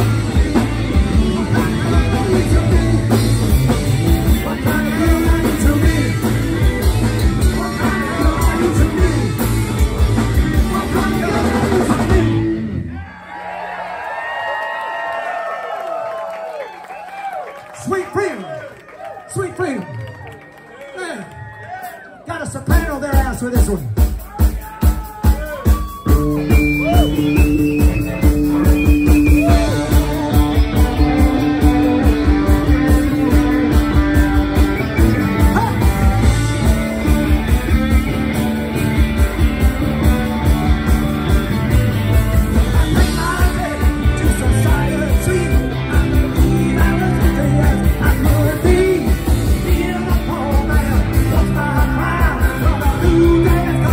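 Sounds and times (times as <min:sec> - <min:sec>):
fast drum beat: 0:00.0 - 0:12.4, 0:22.6 - 0:53.9
electric guitars: 0:00.0 - 0:13.0, 0:25.2 - 0:53.9
live rock band playing: 0:00.0 - 0:13.0, 0:21.8 - 0:53.9
shouted lead vocal: 0:01.0 - 0:03.5, 0:07.1 - 0:09.6, 0:10.5 - 0:16.2, 0:20.8 - 0:27.3, 0:28.5 - 0:33.8, 0:34.9 - 0:37.5, 0:42.5 - 0:53.9
crowd cheering and clapping: 0:11.2 - 0:22.8, 0:24.2 - 0:48.6.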